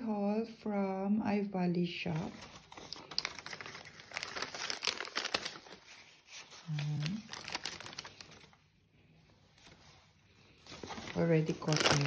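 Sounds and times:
plastic food packets crinkling: 2.2s - 8.9s, 9.6s - 12.0s.

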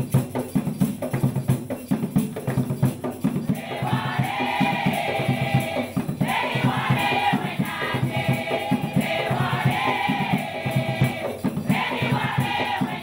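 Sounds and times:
hand drums beat: 0.0s - 13.0s
women's choir singing: 3.5s - 13.0s.

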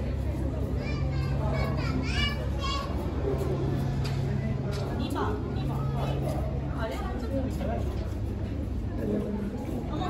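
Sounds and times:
people talking nearby: 0.0s - 10.0s.

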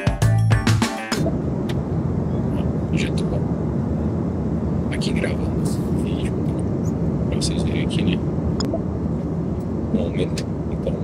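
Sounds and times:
airliner cabin drone: 1.0s - 11.0s.

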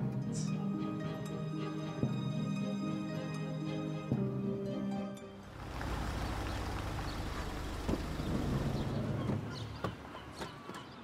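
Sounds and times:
low engine rumble: 5.5s - 10.1s
tyres on paving stones: 5.6s - 11.0s.

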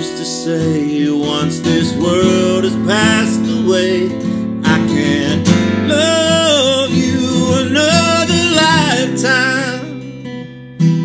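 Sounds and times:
man singing wordless melody: 0.0s - 10.4s
strummed acoustic guitar: 0.0s - 11.0s.

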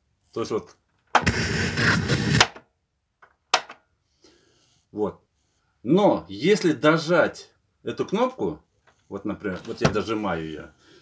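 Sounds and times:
loud static from speakers: 1.2s - 2.6s.

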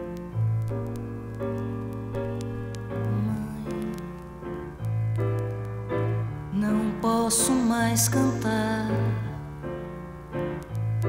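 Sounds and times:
piano chords over low bass: 0.0s - 11.0s.

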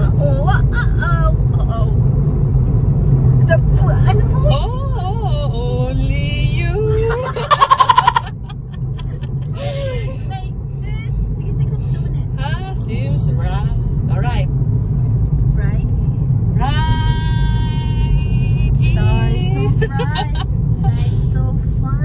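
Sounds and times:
car cabin rumble: 0.0s - 22.0s
women's vocal sounds: 3.6s - 10.6s, 16.6s - 21.3s.

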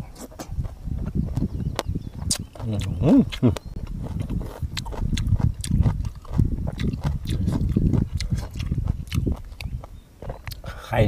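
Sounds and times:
wet chewing and lip-smacking: 0.0s - 10.7s
person humming mmm: 2.3s - 3.7s.

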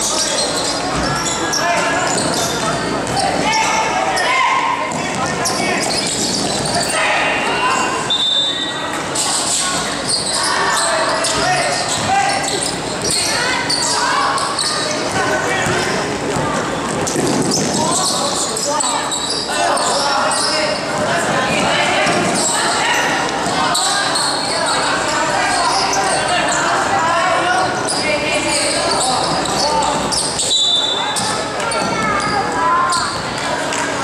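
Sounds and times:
people shouting in echoing hall: 0.0s - 16.6s, 17.8s - 34.0s.

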